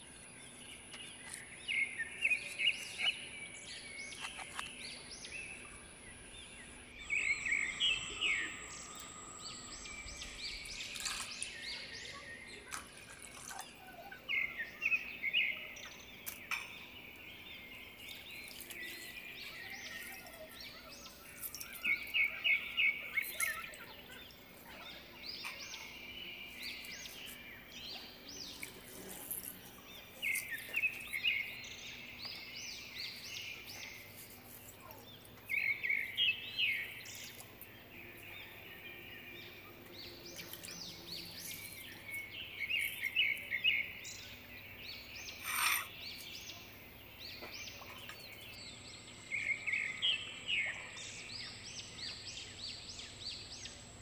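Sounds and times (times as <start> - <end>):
small bird chirping: 0.0 - 53.9.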